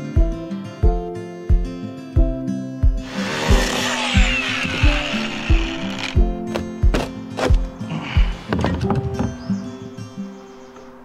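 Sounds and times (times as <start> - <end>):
background music with beat: 0.0 - 3.1
angle grinder cutting: 3.0 - 6.6.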